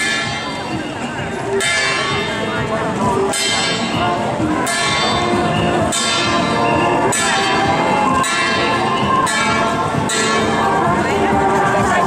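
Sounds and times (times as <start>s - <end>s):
gong strokes ringing: 0.0s - 10.9s.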